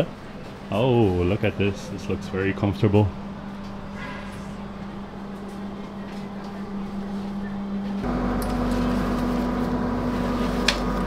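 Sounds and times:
train carriage hum: 0.0s - 11.0s.

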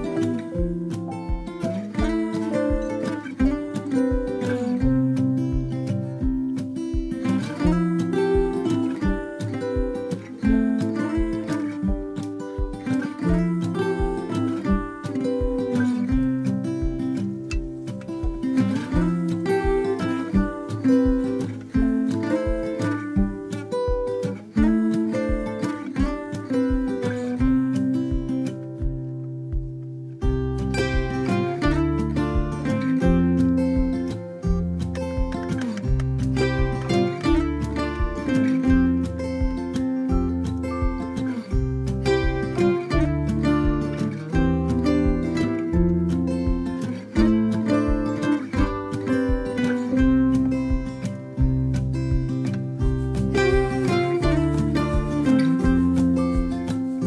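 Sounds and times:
acoustic guitar music with beat: 0.0s - 57.0s.

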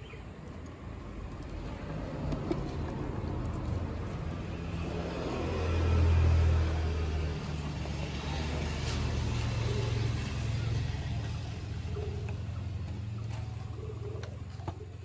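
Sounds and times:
vehicle engine rumble: 0.0s - 15.0s.

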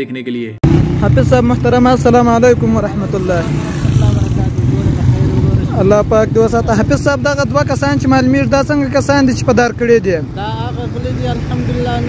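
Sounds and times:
man speaking: 0.0s - 12.0s
street traffic rumble: 0.6s - 12.0s.

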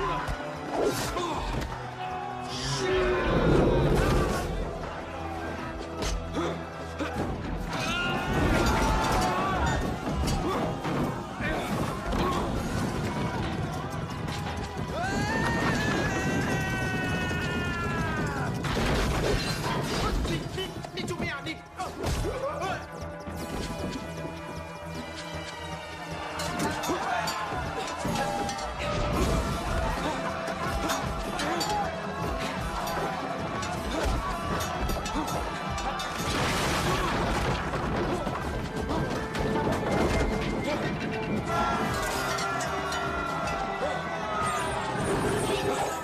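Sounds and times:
action film score music: 0.0s - 46.0s.

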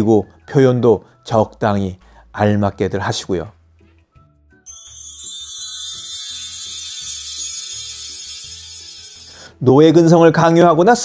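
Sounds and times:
high shimmering hiss: 4.8s - 9.6s.

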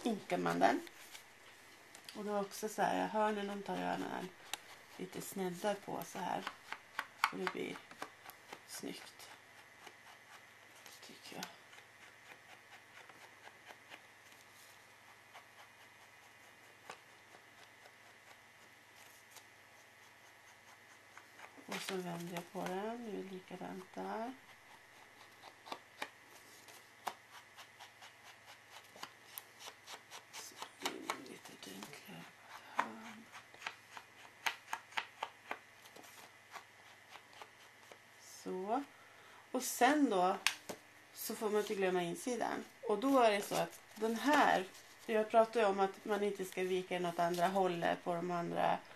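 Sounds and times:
faint steady hum: 0.0s - 48.9s.

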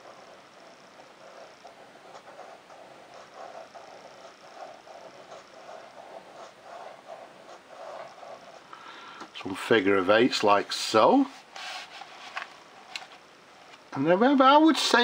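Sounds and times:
fountain pen nib scratching paper: 0.0s - 8.7s.

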